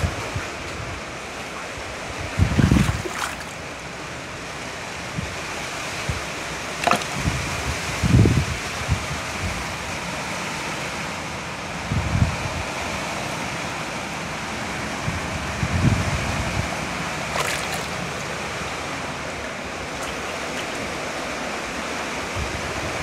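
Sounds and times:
water pouring and splashing: 0.0s - 3.9s, 6.8s - 7.7s, 17.3s - 18.4s, 19.8s - 21.3s.

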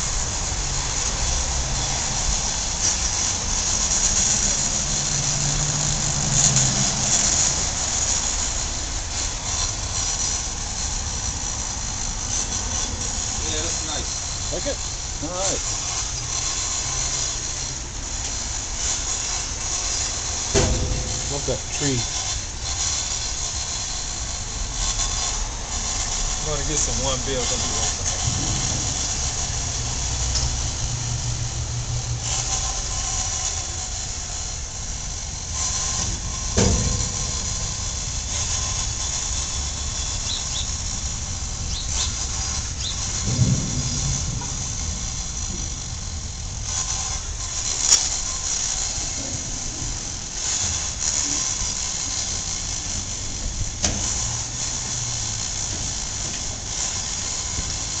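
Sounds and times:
high-pitched hiss: 0.0s - 58.0s
vehicle engines rumbling: 0.0s - 58.0s.

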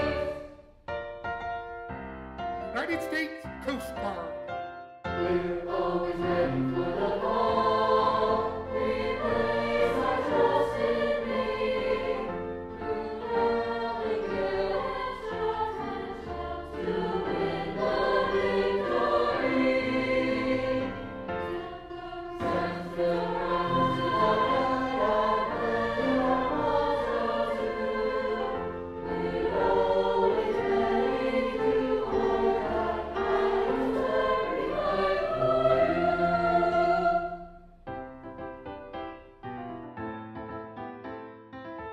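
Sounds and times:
choir singing: 0.0s - 0.6s, 5.1s - 37.8s.

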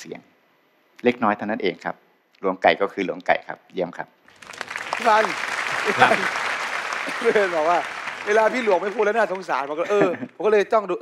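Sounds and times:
audience applause: 4.3s - 10.4s.

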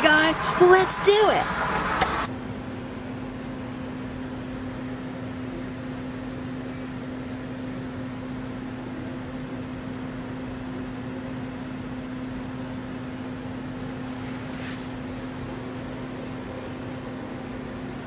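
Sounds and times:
steady droning hum: 0.0s - 3.6s.

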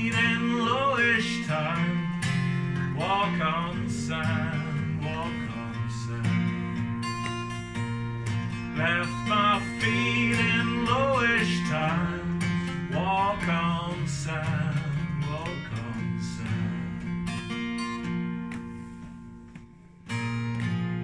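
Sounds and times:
wordless singing: 0.0s - 7.0s, 8.6s - 17.2s
acoustic guitar folk-blues: 0.0s - 21.0s.

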